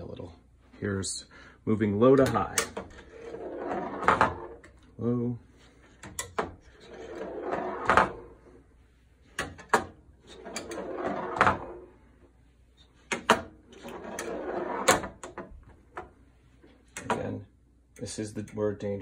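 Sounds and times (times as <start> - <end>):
steel pinball rolling: 2.2 - 4.8, 6.1 - 8.3, 9.4 - 11.9, 13.1 - 15.4.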